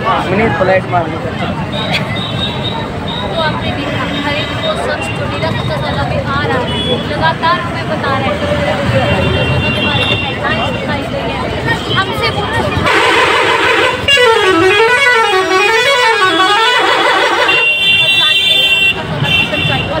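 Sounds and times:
road traffic noise: 0:00.0 - 0:20.0
warbling musical bus horn: 0:12.8 - 0:19.9.

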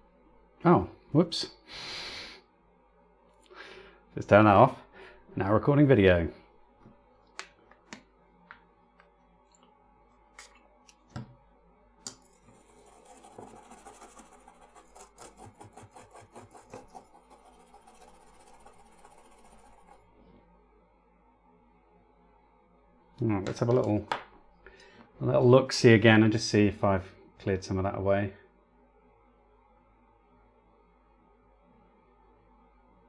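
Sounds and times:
toothbrush scrubbing circuit board: 0:12.2 - 0:20.1.

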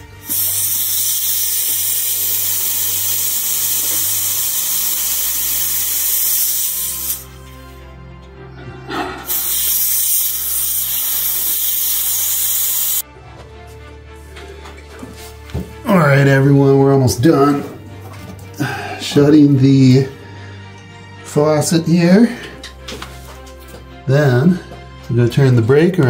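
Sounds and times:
compressed air hissing: 0:00.0 - 0:07.9, 0:08.6 - 0:13.0, 0:18.4 - 0:20.6.

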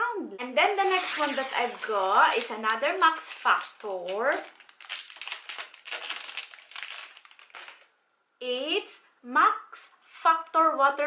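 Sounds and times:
plastic packaging crinkling: 0:01.0 - 0:07.9.

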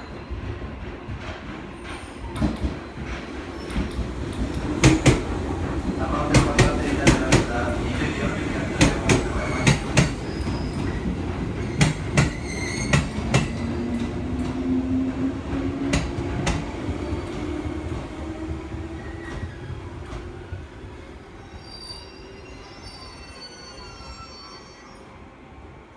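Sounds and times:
train wheels clicking over rail joints: 0:00.6 - 0:07.7, 0:08.7 - 0:14.6.

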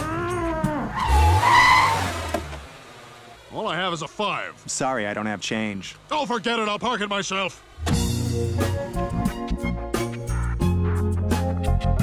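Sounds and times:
car tyres squealing: 0:00.0 - 0:04.6
car engine revving low: 0:00.0 - 0:04.7, 0:07.6 - 0:11.2.

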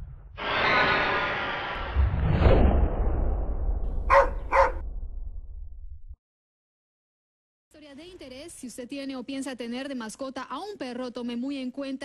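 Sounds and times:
dog barking: 0:04.1 - 0:04.8.

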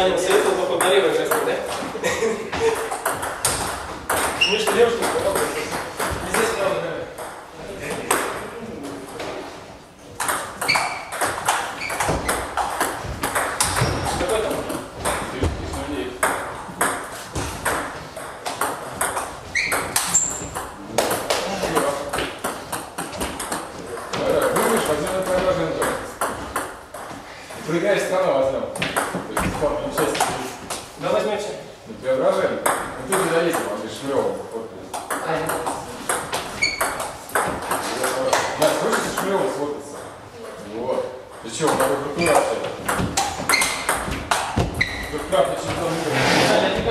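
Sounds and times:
table tennis balls clicking: 0:02.6 - 0:09.2, 0:10.1 - 0:15.4, 0:16.1 - 0:27.2, 0:34.9 - 0:40.2, 0:41.3 - 0:45.6.

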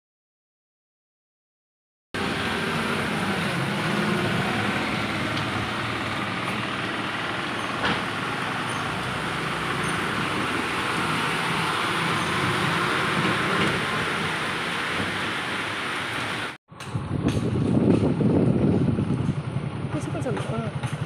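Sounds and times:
tyres hissing on wet road: 0:02.2 - 0:16.6
truck engine passing: 0:02.2 - 0:17.6.

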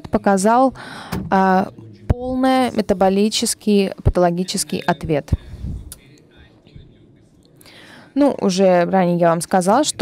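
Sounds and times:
interpreter speaking: 0:00.0 - 0:07.3
low room hum: 0:00.0 - 0:10.0.

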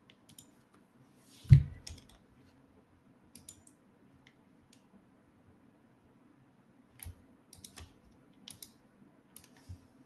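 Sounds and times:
keyboard keystrokes clicking: 0:07.0 - 0:08.8.

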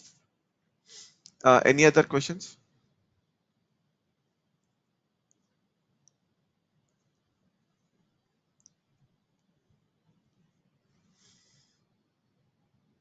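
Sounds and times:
faint clicks: 0:04.6 - 0:06.2, 0:08.6 - 0:09.5.

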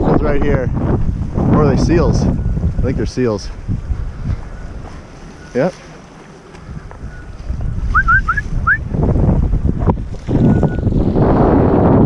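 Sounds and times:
rushing ocean water: 0:00.0 - 0:12.0
wind buffeting microphone: 0:00.0 - 0:12.0.

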